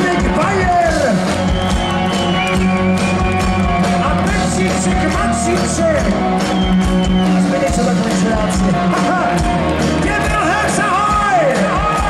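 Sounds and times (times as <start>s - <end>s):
bass guitar: 0.0s - 12.0s
steady drum beat: 0.0s - 12.0s.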